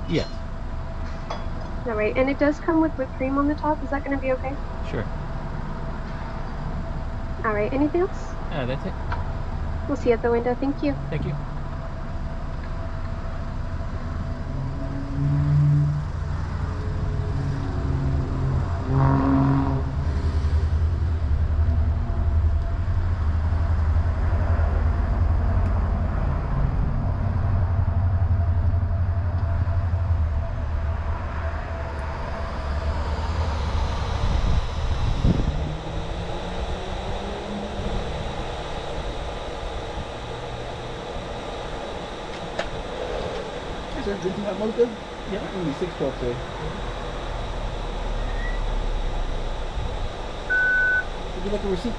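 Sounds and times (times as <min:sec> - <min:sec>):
car engine and road rumble: 0:00.0 - 0:51.9.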